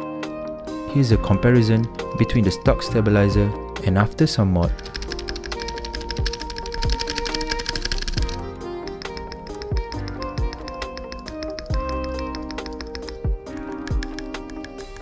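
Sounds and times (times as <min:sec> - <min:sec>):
background music: 0:00.0 - 0:15.0
keyboard spacebar clicking: 0:04.8 - 0:15.0.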